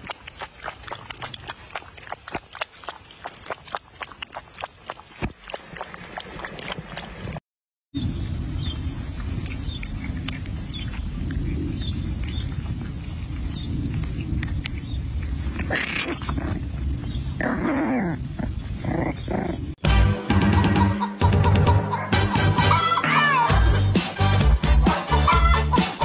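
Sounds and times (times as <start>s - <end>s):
puppies growling: 13.6s - 19.8s
music: 19.8s - 26.0s.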